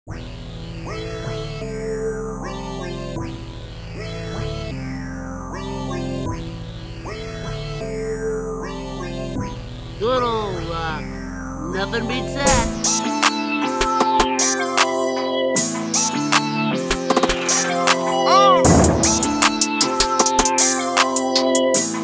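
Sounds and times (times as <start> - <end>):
trap instrumental beat: 12.5 - 22.0.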